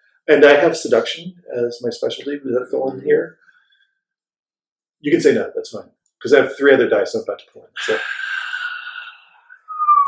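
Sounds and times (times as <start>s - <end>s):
person whistling: 9.5s - 10.0s.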